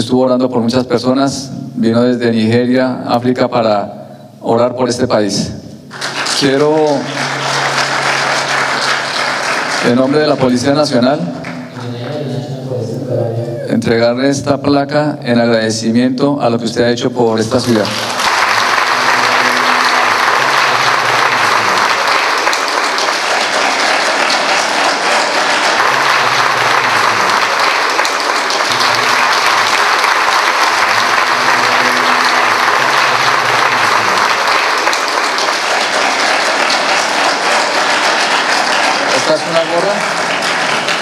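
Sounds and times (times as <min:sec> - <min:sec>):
audience applauding: 0:05.9 - 0:12.2, 0:17.5 - 0:41.0.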